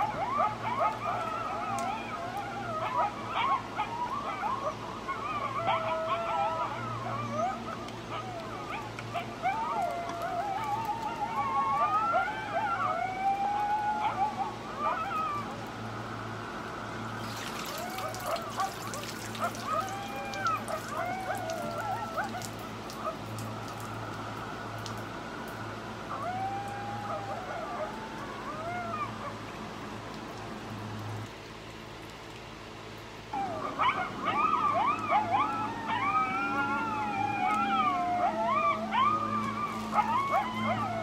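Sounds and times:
coyotes howling and yipping: 0.0 - 31.8, 32.7 - 41.0
water dripping and trickling: 15.1 - 33.3.

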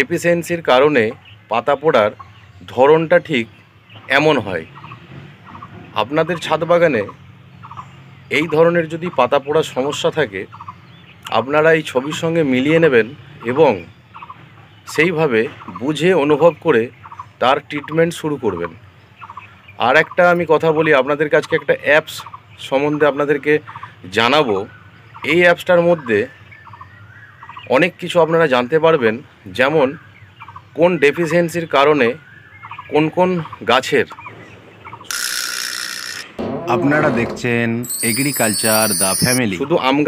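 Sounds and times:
man speaking: 36.7 - 40.0.

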